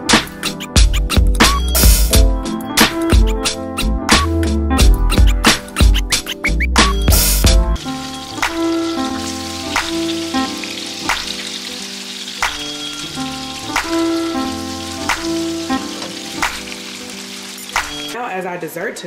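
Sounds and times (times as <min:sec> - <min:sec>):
background music with beat: 0:00.0 - 0:18.2
fish sizzling in frying pan: 0:07.3 - 0:18.2.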